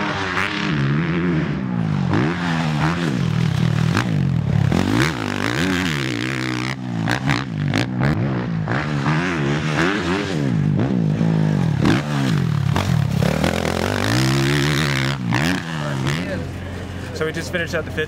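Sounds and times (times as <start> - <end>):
motocross bike engine revving: 0.0 - 17.0.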